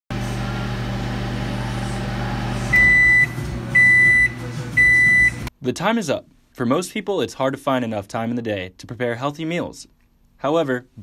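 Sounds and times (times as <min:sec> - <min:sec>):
microwave oven humming: 0:00.1 - 0:05.5
microwave long beeps: 0:02.7 - 0:05.5.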